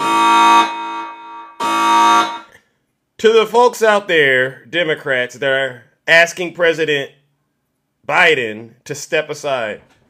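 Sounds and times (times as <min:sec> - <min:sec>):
alarm buzzer blasts: 0:00.0 - 0:02.6.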